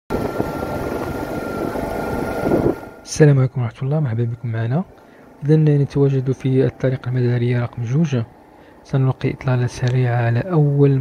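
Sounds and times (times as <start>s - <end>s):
engine rumble: 0.1s - 11.0s
faint high whine: 0.1s - 11.0s
road and wind noise: 0.1s - 11.0s.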